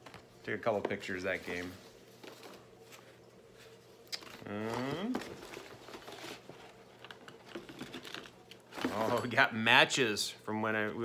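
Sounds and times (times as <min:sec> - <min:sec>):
paper rustling: 0:01.2 - 0:09.3.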